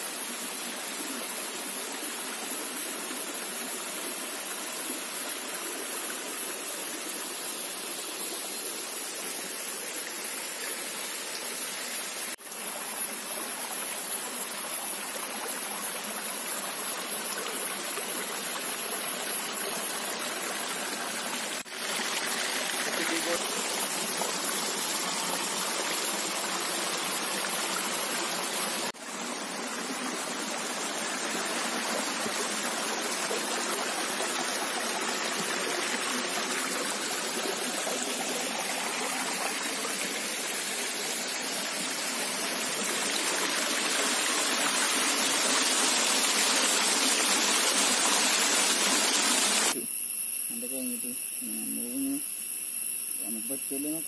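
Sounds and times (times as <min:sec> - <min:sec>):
stream running over rocks: 0:00.0 - 0:49.8
falling water: 0:16.0 - 0:49.8.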